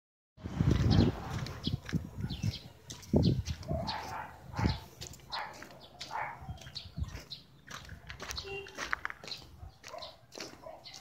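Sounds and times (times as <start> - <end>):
dog barking: 3.6 - 6.8, 9.6 - 11.0.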